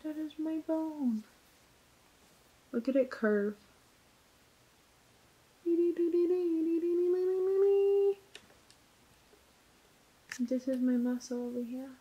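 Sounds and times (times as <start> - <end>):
faint clicks: 7.5 - 9.4, 10.3 - 11.0.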